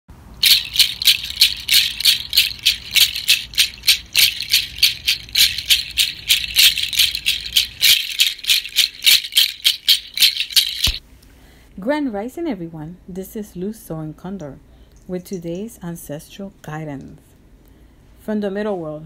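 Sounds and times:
hand rattle shaken: 0:00.4 - 0:11.0.

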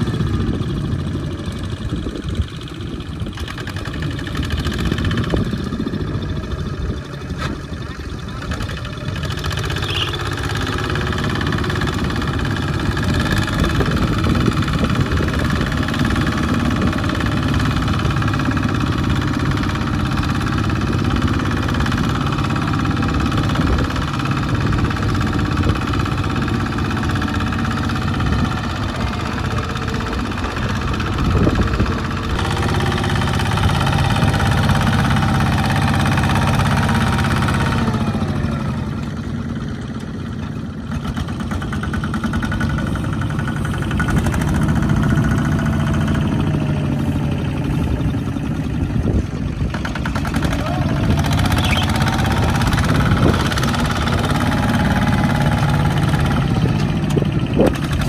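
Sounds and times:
diesel engine chugging: 0:00.0 - 0:58.0.

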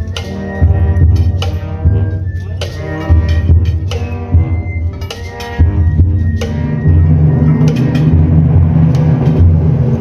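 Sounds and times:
band playing slow march: 0:00.0 - 0:10.0
light percussion strikes: 0:00.0 - 0:10.0
low brass notes: 0:00.0 - 0:10.0.

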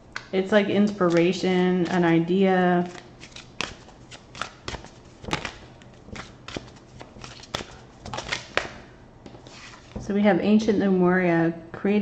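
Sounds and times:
cards being shuffled: 0:00.2 - 0:02.1, 0:02.8 - 0:10.0.

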